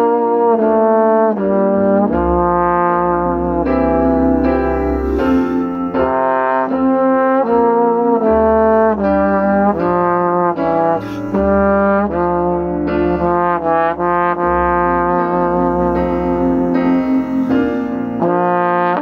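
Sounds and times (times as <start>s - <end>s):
trombone playing a melody: 0.0s - 19.0s.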